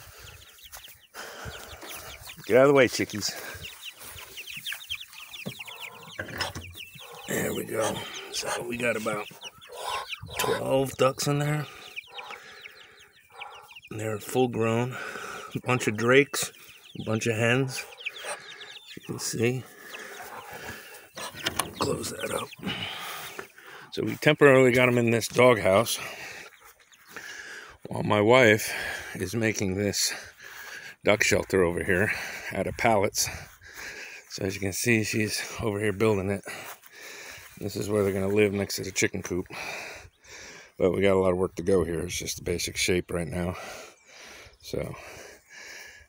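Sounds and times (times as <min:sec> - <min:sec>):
faint ducks: 0:00.0 - 0:46.0
young chickens peeping: 0:00.0 - 0:46.0.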